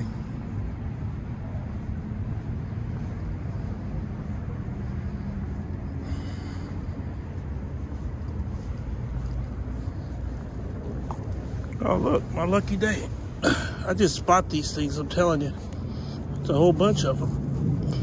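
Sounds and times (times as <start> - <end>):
low outdoor rumble: 0.0 - 18.0.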